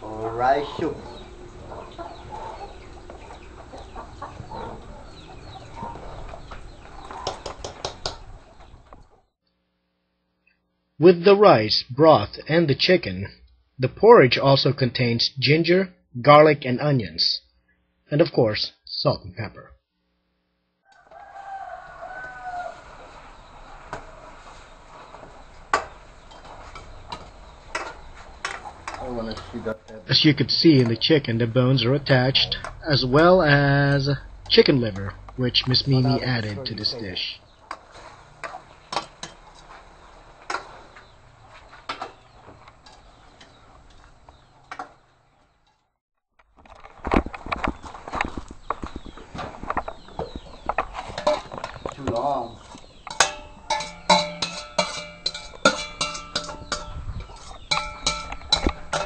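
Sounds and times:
birds chirping and clucking: 0.0s - 9.3s, 20.9s - 45.8s, 47.3s - 59.0s
rooster crowing: 0.5s - 6.2s, 20.8s - 23.2s
metal ladle knocking in pot: 53.1s - 59.0s.

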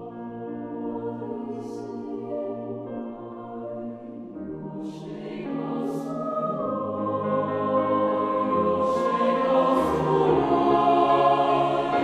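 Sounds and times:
mixed choir singing a chord: 0.0s - 12.0s.

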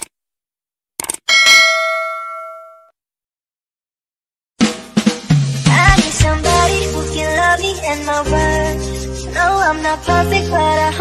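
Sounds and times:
bright bell ding: 1.3s - 2.9s.

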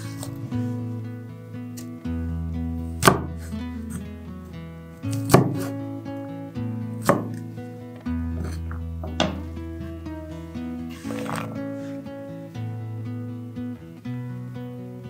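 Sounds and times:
background music: 0.0s - 15.0s
knife chopping on wooden board: 3.0s - 3.4s, 5.2s - 5.7s, 7.0s - 7.4s.

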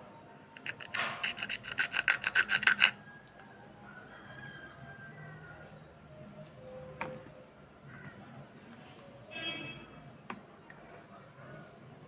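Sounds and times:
metal blade scraping slate pencil: 0.6s - 3.0s.

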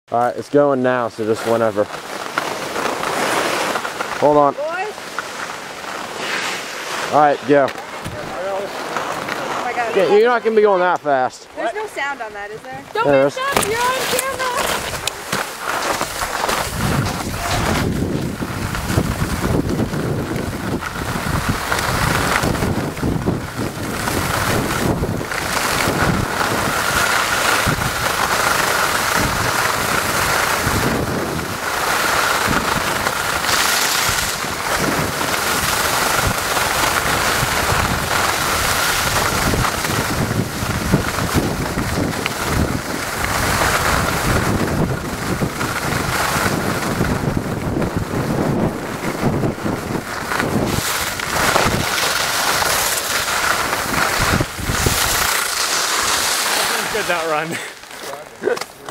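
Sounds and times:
skis hissing on snow: 0.6s - 58.4s
wind rushing on microphone: 16.0s - 57.5s.

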